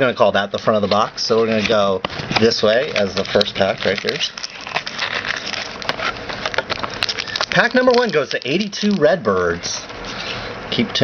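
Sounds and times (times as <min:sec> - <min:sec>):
wrapper crinkling and rustling: 0:00.6 - 0:10.2.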